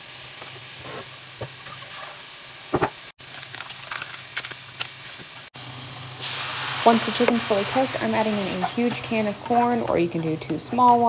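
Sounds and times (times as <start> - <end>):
food sizzling in a skillet: 0.0 - 10.0.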